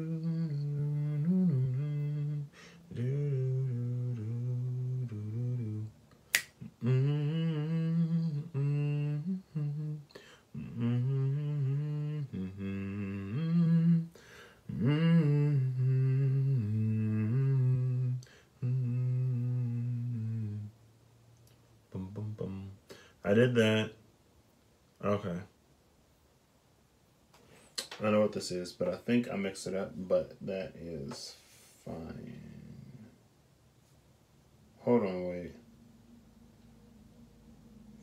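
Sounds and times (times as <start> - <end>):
man humming a tune: 0.0 - 20.7, 21.9 - 23.5, 30.9 - 33.2
sharp finger snap click: 6.3 - 6.6.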